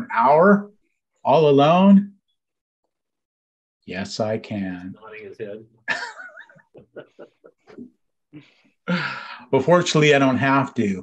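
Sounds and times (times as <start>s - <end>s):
man laughing over video call: 5.8s - 8.0s.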